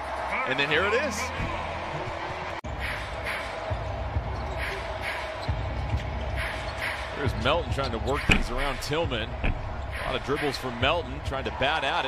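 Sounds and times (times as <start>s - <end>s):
steady arena hum: 2.7s - 12.0s
basketball bouncing on hardwood: 8.2s - 8.6s, 9.3s - 10.0s.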